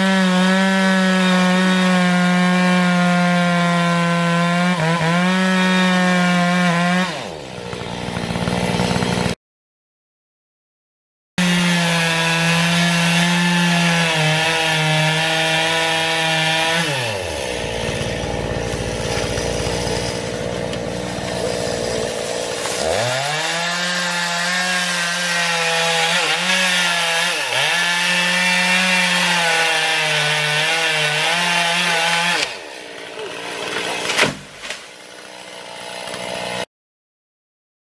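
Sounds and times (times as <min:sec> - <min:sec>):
chainsaw cutting wood: 0:00.0 - 0:09.4, 0:11.4 - 0:36.7
outdoor ambience: 0:17.4 - 0:24.9.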